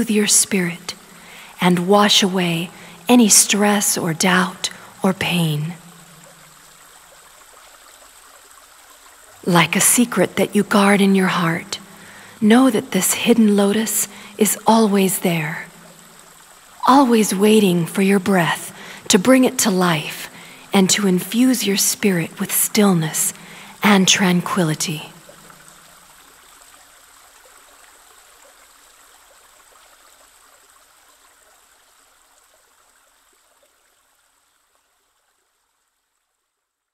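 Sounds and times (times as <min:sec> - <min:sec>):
running water trickling: 0:00.0 - 0:36.4.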